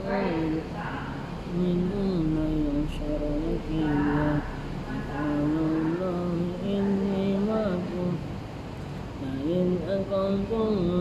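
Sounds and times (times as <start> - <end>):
man chanting recitation: 0.0 - 8.4, 9.2 - 11.0.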